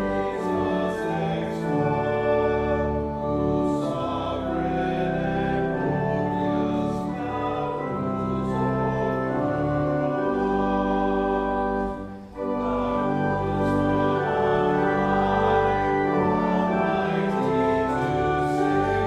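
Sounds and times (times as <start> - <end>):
congregation singing a hymn: 0.0 - 19.0
organ chords: 0.0 - 19.0.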